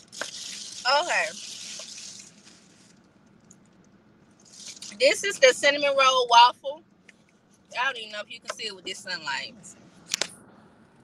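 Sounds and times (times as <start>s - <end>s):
plastic crinkling: 0.0s - 3.7s, 4.4s - 5.0s.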